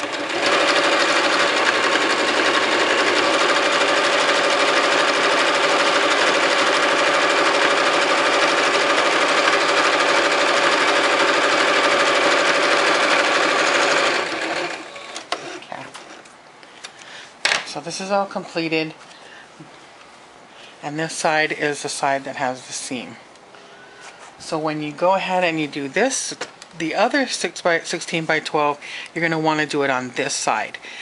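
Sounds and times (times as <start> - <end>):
electric sewing machine running: 0.0 - 15.6.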